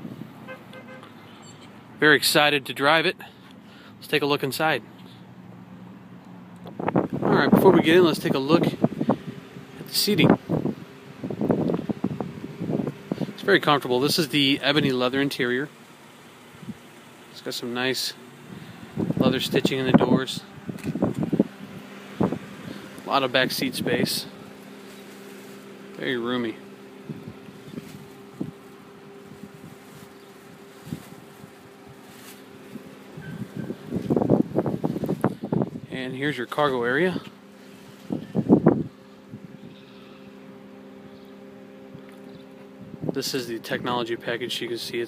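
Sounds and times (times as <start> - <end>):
steady low hum: 0.0 - 45.0
wind buffeting microphone: 6.7 - 13.4, 18.4 - 22.8, 33.1 - 35.9, 38.1 - 39.8
rustling: 24.5 - 26.0, 26.8 - 34.2.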